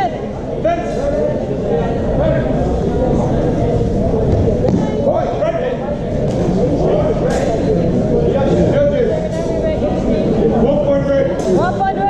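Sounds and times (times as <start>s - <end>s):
indistinct voices echoing in hall: 0.0s - 12.0s.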